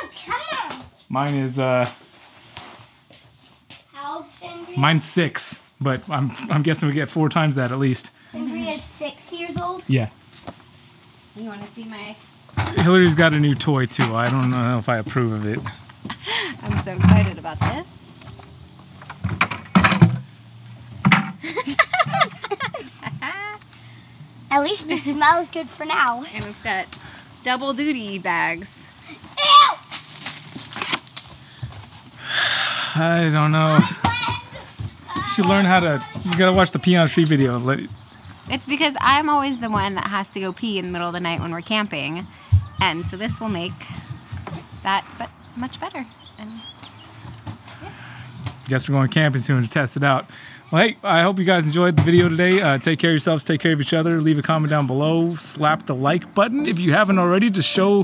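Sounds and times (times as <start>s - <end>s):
cardboard packaging crinkling: 29.9s - 31.5s.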